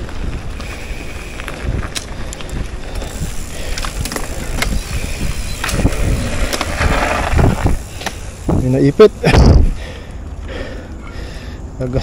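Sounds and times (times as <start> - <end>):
scraping on bike: 0.0 - 8.9
bike rattles and clicks: 0.0 - 12.0
bike tyres on dirt trail: 0.0 - 12.0.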